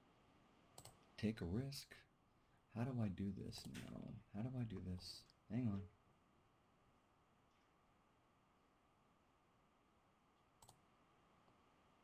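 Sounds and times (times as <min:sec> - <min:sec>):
computer mouse double click: 0:00.8 - 0:01.0, 0:10.6 - 0:10.8.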